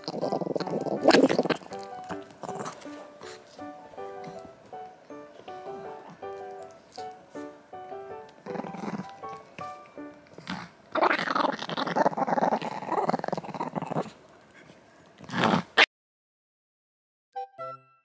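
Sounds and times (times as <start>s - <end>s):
dog growling: 0.0s - 4.6s, 8.4s - 14.2s, 15.2s - 15.8s
light background music: 0.0s - 11.4s.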